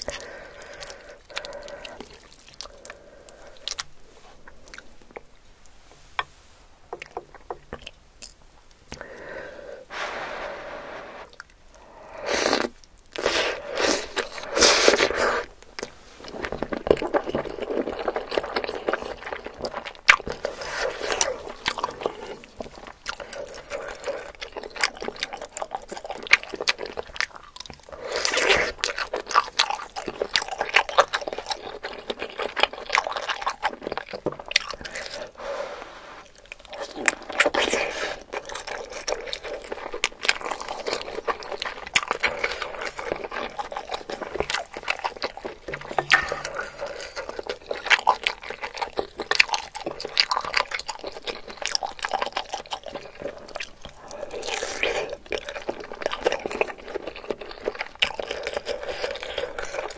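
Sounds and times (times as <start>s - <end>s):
wet chewing with mouth clicks: 0.0s - 5.8s, 6.9s - 9.3s, 11.2s - 35.4s, 36.2s - 59.9s
slurping noodles: 9.1s - 15.5s.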